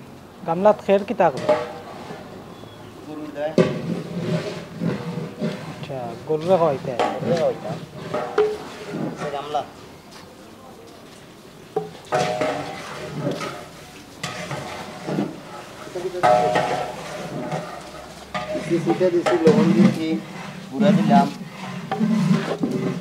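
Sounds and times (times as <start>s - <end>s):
pole stirring straw: 3.1s - 9.9s, 11.8s - 23.0s.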